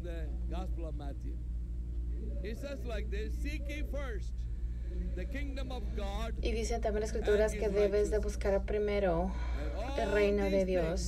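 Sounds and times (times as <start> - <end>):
steady low hum: 0.0 - 11.0
person speaking: 4.9 - 11.0.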